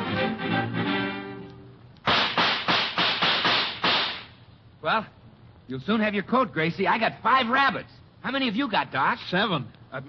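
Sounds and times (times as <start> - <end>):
music bridge: 0.0 - 2.0
gunshots volley: 2.1 - 4.3.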